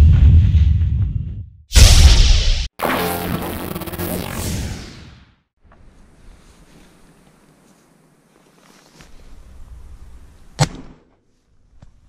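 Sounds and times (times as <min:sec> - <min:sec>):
heavy whoosh and boom: 0:00.0 - 0:05.3
sharp hit: 0:01.7 - 0:05.3
faint outdoor background noise: 0:05.6 - 0:12.0.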